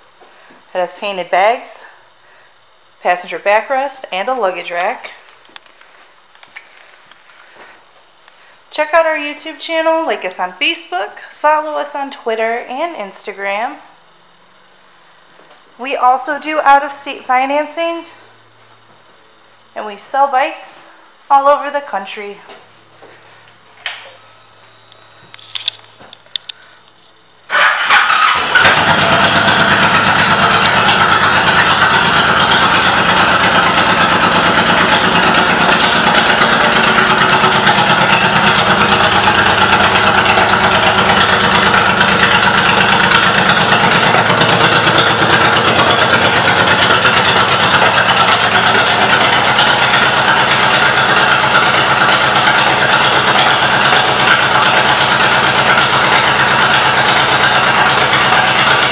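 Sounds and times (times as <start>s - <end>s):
motorcycle engine starting and idling: 23.0s - 26.8s, 27.4s - 58.9s.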